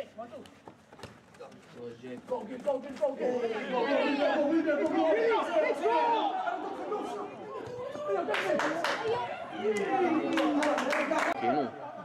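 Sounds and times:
several voices shouting: 3.2 - 11.4.

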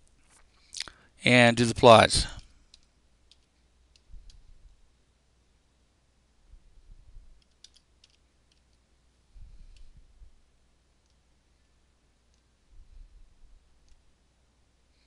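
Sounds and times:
keyboard keystrokes: 7.4 - 8.7.

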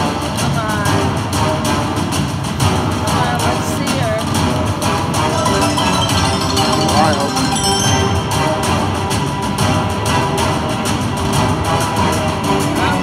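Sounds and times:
slot machine bonus music: 5.2 - 9.0
win meter counting up: 5.2 - 9.0.

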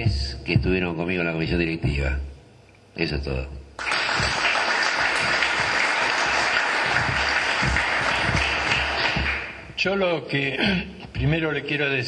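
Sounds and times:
audience applauding: 3.8 - 9.7.

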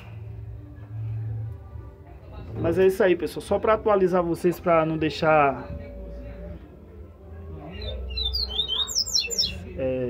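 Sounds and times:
bird singing high chirps: 7.7 - 9.6.

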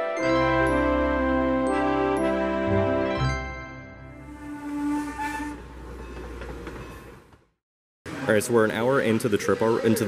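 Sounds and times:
steam locomotive whistle: 4.1 - 5.9
train running noise: 4.3 - 7.5.

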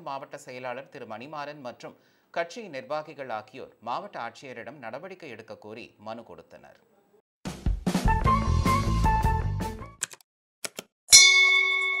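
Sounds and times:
bright bell chime: 11.1 - 12.0.

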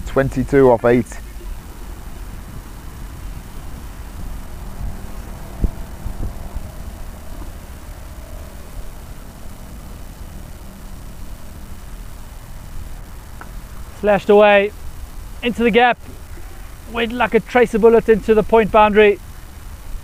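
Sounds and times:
low rumble and hiss: 0.0 - 20.0.

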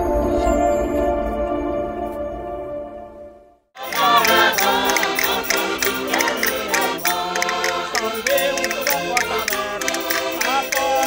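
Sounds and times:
concertinas playing: 3.8 - 11.0
group singing folk song: 3.8 - 11.0
castanets clicking: 3.9 - 11.0.

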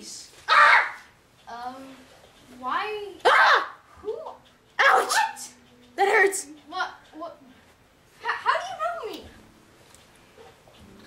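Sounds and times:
dog barking: 4.8 - 5.6.

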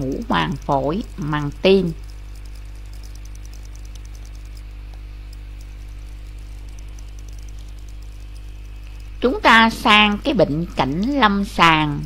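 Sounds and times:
faint rapid high ticking: 0.0 - 12.0
low electrical hum: 0.0 - 12.0.

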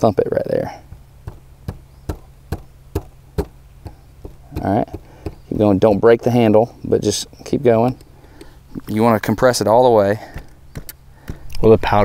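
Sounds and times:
hand knocking on wooden ramrod: 1.3 - 6.0.

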